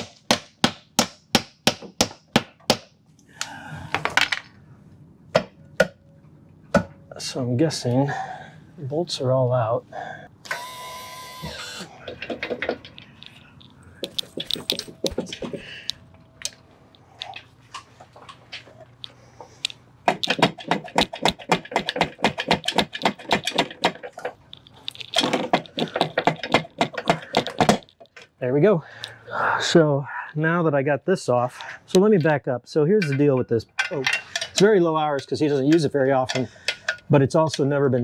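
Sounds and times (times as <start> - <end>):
metal clicking and clattering: 20.1 - 28.3.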